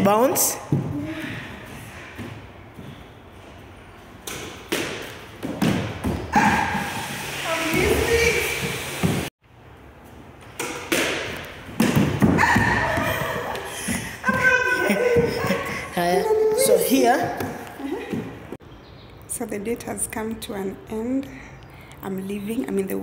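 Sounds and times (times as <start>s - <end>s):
squash ball thuds with echo: 4.2s - 6.8s, 10.6s - 14.5s.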